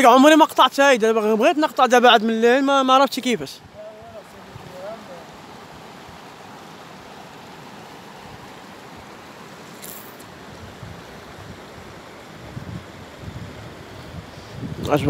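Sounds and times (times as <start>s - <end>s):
flowing river water: 0.0s - 15.0s
brief high hiss: 9.7s - 10.3s
wind rumble on microphone: 10.4s - 15.0s.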